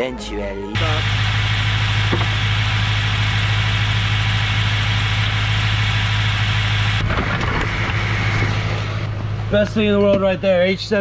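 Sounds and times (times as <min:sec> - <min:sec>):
car engine idling: 0:00.8 - 0:11.0.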